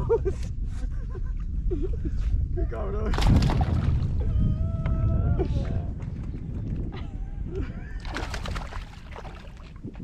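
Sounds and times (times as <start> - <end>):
wind rumbling on microphone: 0.0 - 10.0
fish thrashing and splashing: 8.0 - 9.8.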